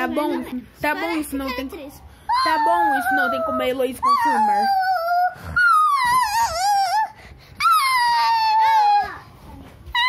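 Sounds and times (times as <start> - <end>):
young child crying: 2.3 - 9.3.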